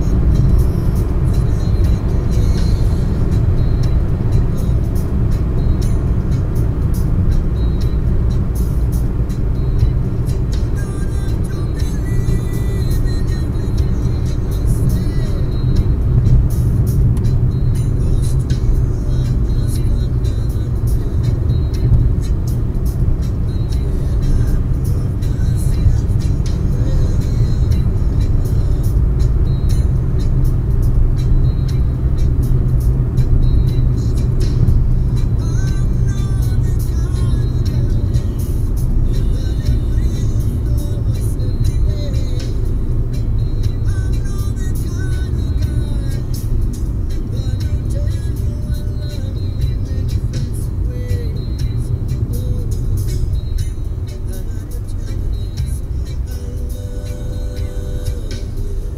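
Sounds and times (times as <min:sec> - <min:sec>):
car engine and tyres rumble: 0:00.0 - 0:58.9
faint music: 0:00.0 - 0:58.9.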